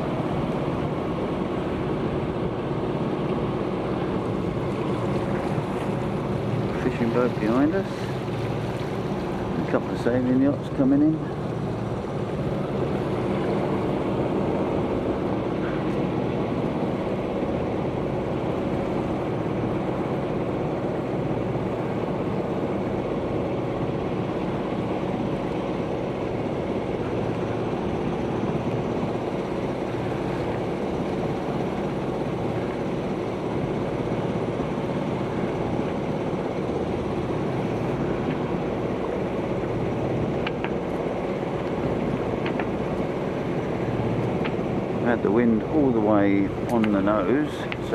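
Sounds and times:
boat engine humming: 0:00.0 - 0:47.9
water along hull: 0:00.0 - 0:47.9.

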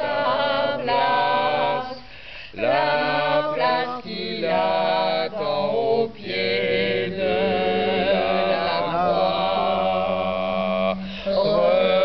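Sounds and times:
unaccompanied choir singing: 0:00.0 - 0:12.0.

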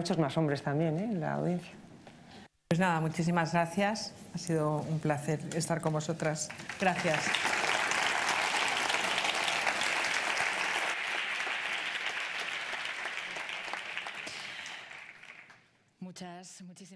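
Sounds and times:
audience clapping: 0:06.3 - 0:15.6.

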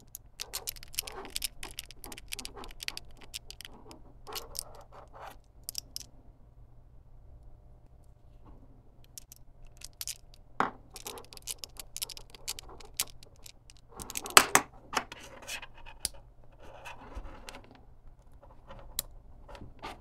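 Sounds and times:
scratching: 0:00.0 - 0:06.0, 0:09.1 - 0:20.0
wires rubbing: 0:00.0 - 0:06.0, 0:09.1 - 0:14.4.

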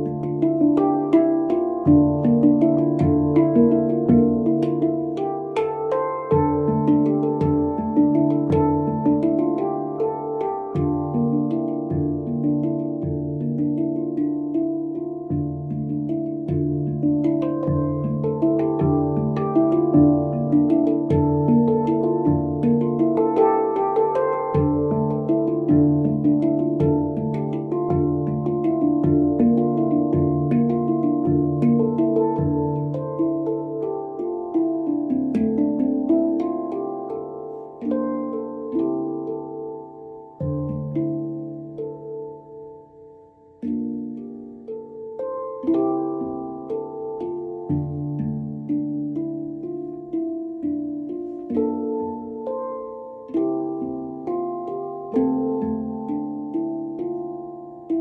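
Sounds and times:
handpan ringing notes: 0:00.0 - 0:58.0
low handpan note struck: 0:00.0 - 0:58.0.

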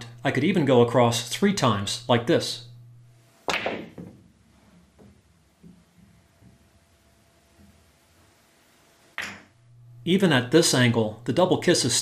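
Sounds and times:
pool balls rolling: 0:03.2 - 0:06.8
balls knocking off cushions: 0:03.5 - 0:04.3.

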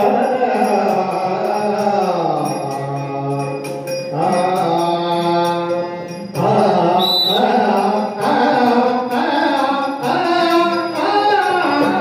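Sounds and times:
man singing devotional chant: 0:00.0 - 0:12.0.

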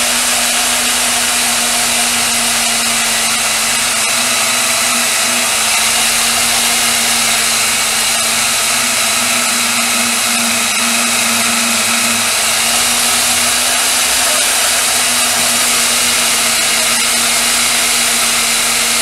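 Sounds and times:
band saw cutting plastic: 0:00.0 - 0:19.0.

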